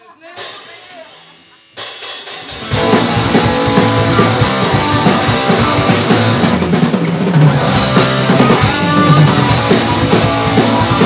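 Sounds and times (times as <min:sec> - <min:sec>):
drums and bass: 0:00.0 - 0:11.0
punk rock band playing: 0:00.2 - 0:11.0
guitar chords ringing: 0:02.5 - 0:06.7, 0:07.5 - 0:11.0.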